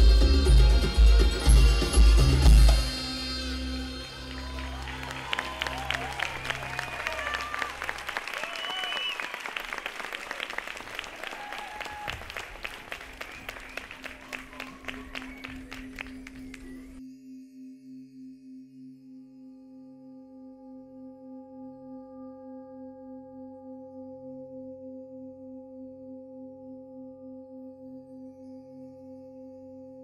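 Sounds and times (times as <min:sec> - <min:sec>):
music: 0:00.0 - 0:08.2, 0:12.6 - 0:30.0
audience applauding and cheering: 0:03.8 - 0:17.0
pulsing ringing ambient music: 0:14.8 - 0:30.0.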